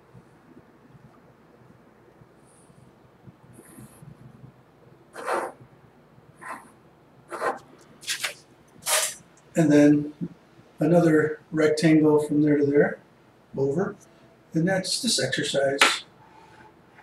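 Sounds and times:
pencil scratching on paper: 5.2 - 5.6.

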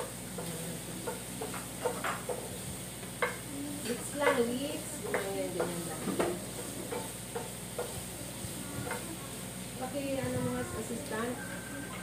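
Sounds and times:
food sizzling: 0.0 - 12.0.

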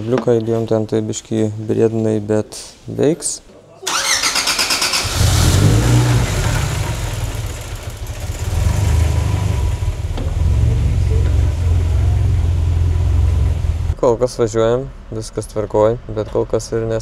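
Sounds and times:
car engine rumbling: 5.0 - 14.0.

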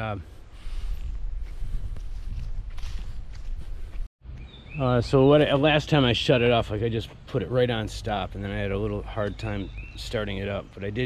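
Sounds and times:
footsteps on grass: 0.6 - 4.1.

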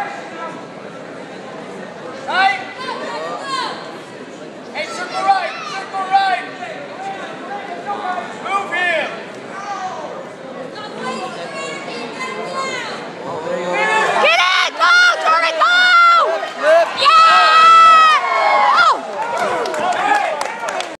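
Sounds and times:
crowd murmur: 0.0 - 20.9
spectators yelling and screaming: 12.3 - 20.6.

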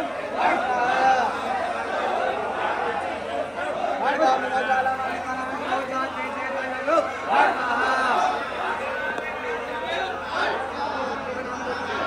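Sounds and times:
crowd of men talking: 0.0 - 12.0.

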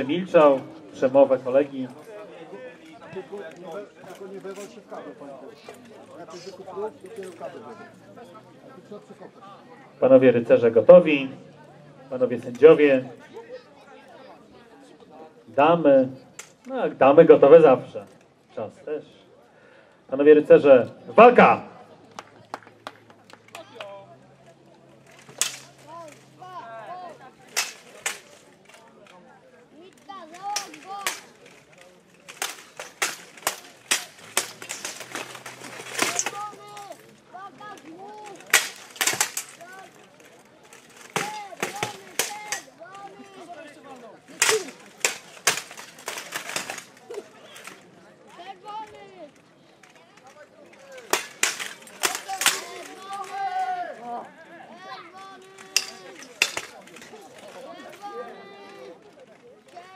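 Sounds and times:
swords clashing metallic clangs: 27.6 - 28.3, 32.3 - 36.9, 44.4 - 46.8, 51.1 - 53.0, 55.6 - 56.8.

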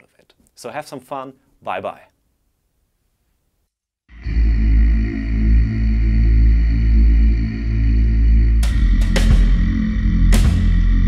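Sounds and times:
bass-heavy held chord: 4.1 - 11.0
sharp drum hits: 8.6 - 11.0.

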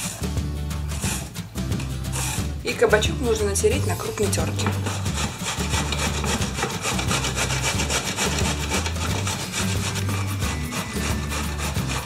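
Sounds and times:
zucchini grated on metal grater: 4.1 - 12.0.

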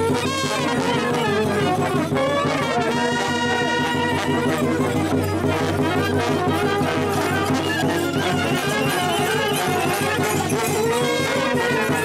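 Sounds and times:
brass band playing folk tune: 0.0 - 12.0.

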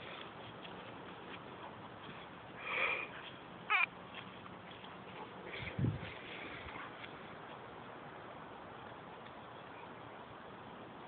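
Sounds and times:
dog yelping: 3.7 - 3.9.

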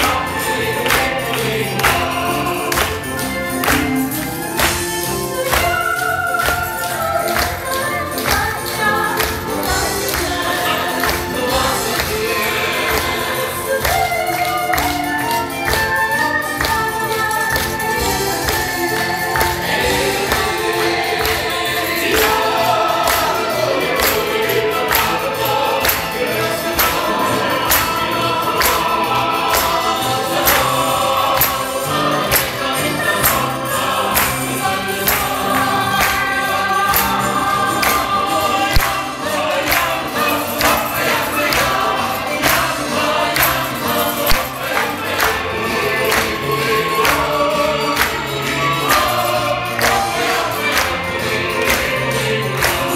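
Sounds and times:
group singing: 0.0 - 52.9
instrumental accompaniment: 0.0 - 52.9
steady percussive beat: 0.0 - 52.9.

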